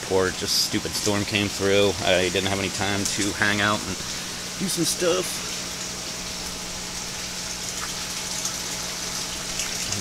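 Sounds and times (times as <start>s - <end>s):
low steady hum: 0.0s - 10.0s
water rushing and trickling: 0.1s - 10.0s.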